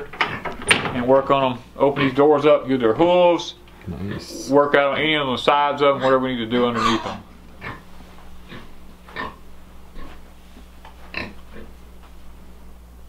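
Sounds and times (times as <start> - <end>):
faint steady hum: 0.0 - 13.0
pigs grunting: 3.8 - 4.7, 5.9 - 9.4, 11.1 - 11.8.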